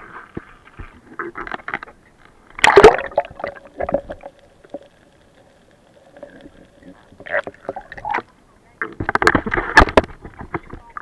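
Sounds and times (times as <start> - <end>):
faint steady hum: 0.0 - 11.0
knocks and scraping on boat: 8.8 - 11.0.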